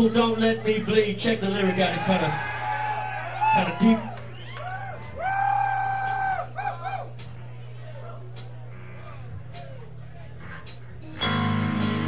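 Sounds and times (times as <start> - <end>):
low electrical hum: 0.0 - 12.0
person whooping: 2.6 - 7.1.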